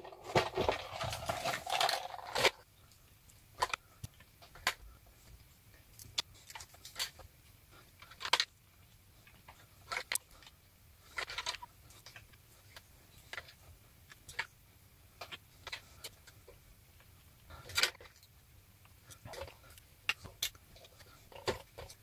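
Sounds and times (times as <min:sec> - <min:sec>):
plastic toy bricks clicking: 0:00.0 - 0:02.6.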